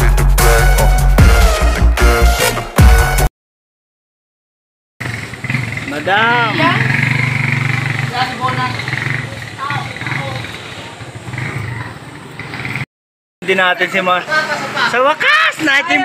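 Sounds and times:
drawn-out call: 5.0s - 12.8s
people's voices: 5.8s - 7.0s, 7.8s - 12.2s.

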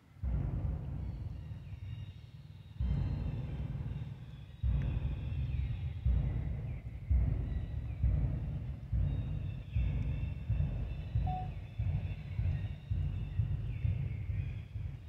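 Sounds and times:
faint high calls: 11.3s - 11.6s.

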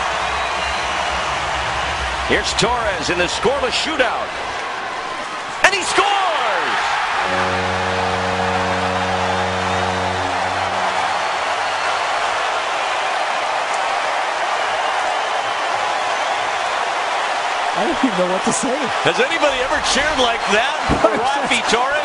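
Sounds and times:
arena crowd cheering: 0.0s - 22.0s
deep horn: 7.2s - 12.4s.

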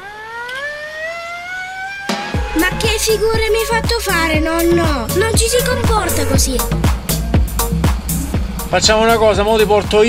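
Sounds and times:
tone gliding upward in pitch: 0.0s - 7.3s.

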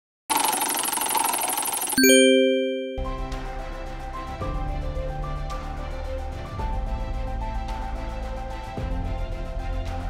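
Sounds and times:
shimmering sound effect: 2.0s - 3.2s
bell-like chime: 2.0s - 3.3s.

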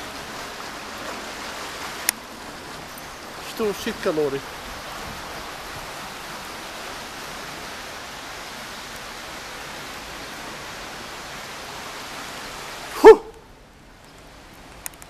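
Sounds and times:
steady outdoor hiss: 0.0s - 15.0s
short loud pitched yelp: 13.0s - 13.4s.

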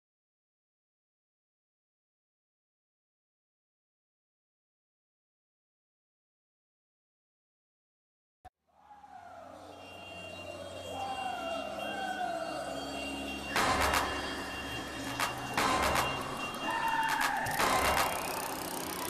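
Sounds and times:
group bicycle ride street noise: 8.8s - 19.0s
siren wailing: 8.8s - 19.0s.

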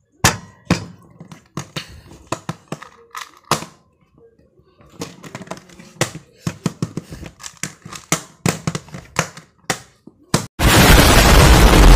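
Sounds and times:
puzzle cube layers clacking: 5.2s - 10.0s.

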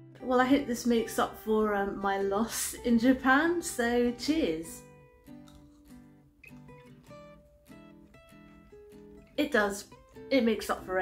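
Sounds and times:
acoustic guitar plucking: 0.0s - 11.0s.

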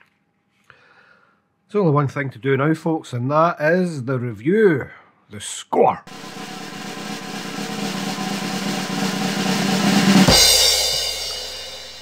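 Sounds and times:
snare drum roll: 6.1s - 12.0s.

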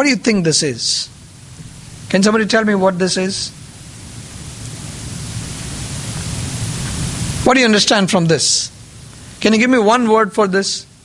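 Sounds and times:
background hiss: 0.0s - 11.0s.

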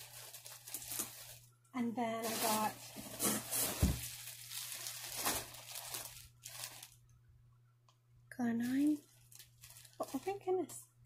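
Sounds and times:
packaging crinkling: 0.0s - 1.5s, 2.2s - 7.1s, 8.6s - 10.5s.

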